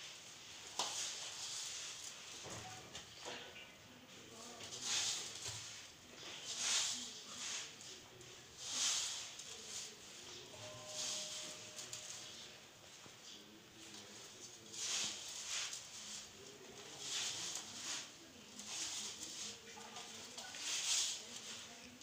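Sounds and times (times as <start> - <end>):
hands kneading dough: 0.0 - 3.1, 4.4 - 12.1, 13.8 - 22.0.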